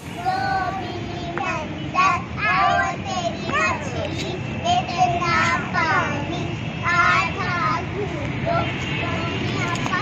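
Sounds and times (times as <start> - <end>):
girls singing a chanted rhyme: 0.0 - 10.0.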